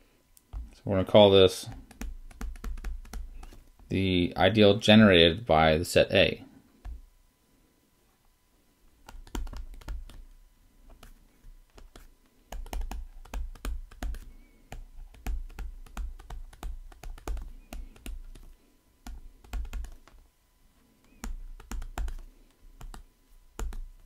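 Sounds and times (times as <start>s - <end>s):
stylus tapping and scraping on tablet: 1.7s - 3.9s, 9.0s - 20.2s, 21.0s - 24.0s.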